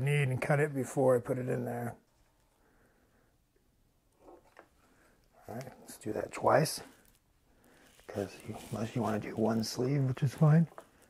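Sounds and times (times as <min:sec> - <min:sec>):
faint handling noises: 0:03.6 - 0:11.0
short rustle or breath: 0:06.8 - 0:08.8.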